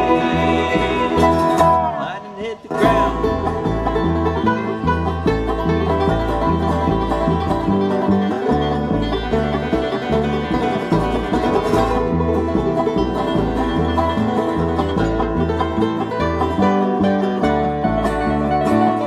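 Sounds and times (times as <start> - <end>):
bass line: 0.0 - 19.0
bluegrass band playing: 0.0 - 19.0
fast-picked banjo: 0.0 - 19.0.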